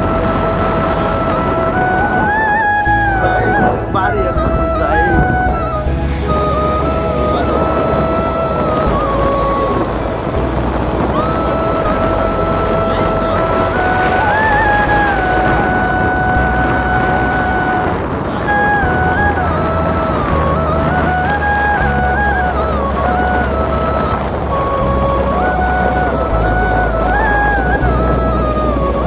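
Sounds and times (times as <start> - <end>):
gliding melody of held notes: 0.0 - 29.0
steady low rumble: 0.0 - 29.0.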